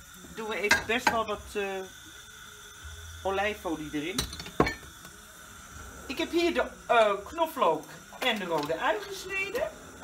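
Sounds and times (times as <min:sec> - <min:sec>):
glass bottle clinking down: 0:04.2 - 0:05.0.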